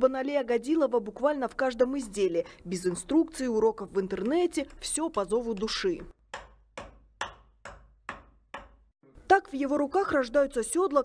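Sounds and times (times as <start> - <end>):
hand hammer striking: 6.0 - 8.9.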